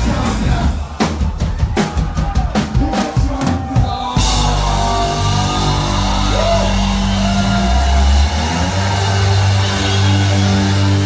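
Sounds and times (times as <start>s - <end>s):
live rock band playing: 0.0s - 11.0s
held bass notes: 4.2s - 11.0s.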